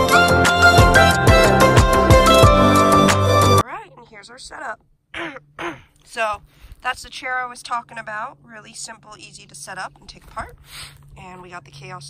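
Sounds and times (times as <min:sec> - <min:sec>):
woman talking: 0:03.6 - 0:05.4, 0:06.0 - 0:12.0.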